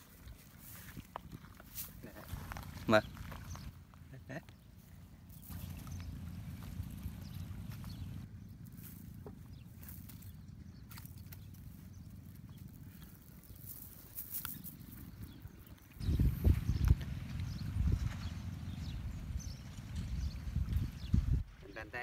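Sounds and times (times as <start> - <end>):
steady low rumble: 0.1 - 21.5.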